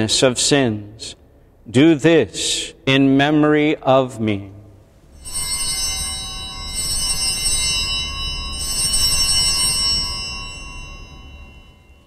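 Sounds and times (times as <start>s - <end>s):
small bells ringing: 5.1s - 12.0s.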